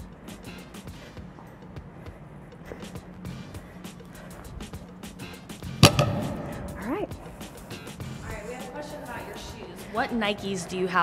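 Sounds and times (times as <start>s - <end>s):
background music: 0.0s - 11.0s
barbell clanking on rubber floor: 5.8s - 6.8s.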